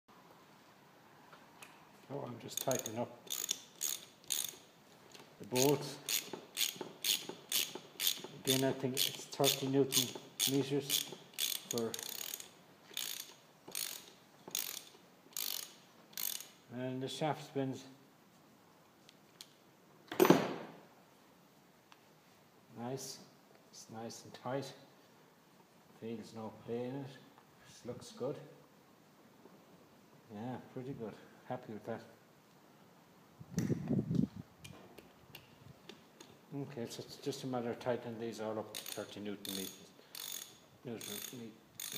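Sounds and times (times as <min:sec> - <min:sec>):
socket ratchet clicking: 0:02.6 - 0:04.7, 0:05.5 - 0:16.6, 0:38.7 - 0:41.9.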